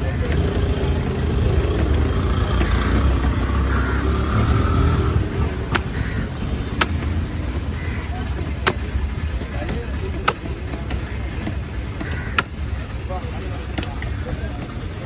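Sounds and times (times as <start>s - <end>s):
market noise: 0.0s - 15.0s
traffic rumble: 0.0s - 15.0s.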